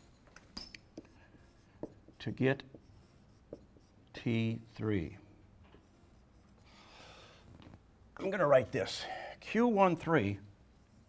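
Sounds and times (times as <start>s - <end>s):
marker squeaking on whiteboard: 0.4s - 4.1s, 5.7s - 6.7s.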